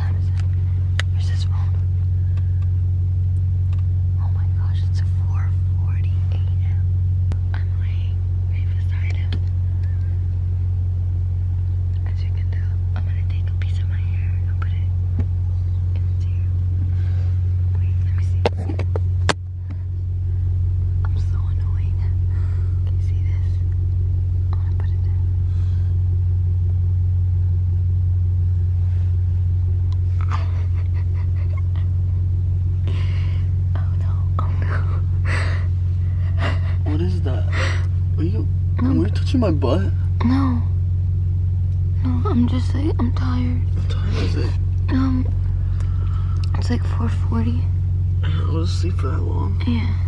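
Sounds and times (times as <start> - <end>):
car idling hum: 0.0 - 50.0
faint whispering: 4.2 - 10.2, 11.9 - 15.0, 15.8 - 18.7, 21.0 - 23.7, 24.5 - 25.4, 32.9 - 35.1.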